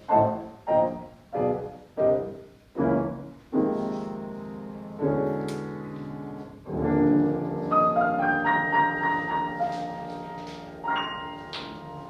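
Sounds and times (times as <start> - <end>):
grand piano playing jazz chords: 0.0 - 12.0.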